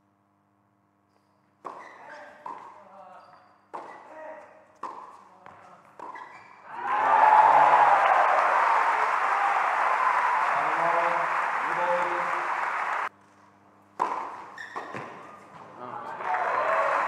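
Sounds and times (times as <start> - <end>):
crowd applauding: 6.7 - 13.1, 16.1 - 17.0.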